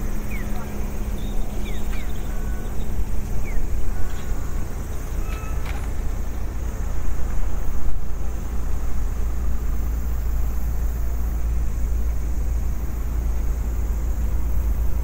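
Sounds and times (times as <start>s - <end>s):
city street traffic rumble: 0.0s - 15.0s.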